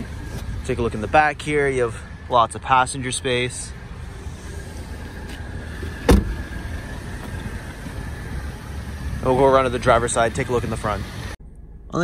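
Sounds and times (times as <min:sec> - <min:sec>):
car door shutting: 0:04.5 - 0:08.4.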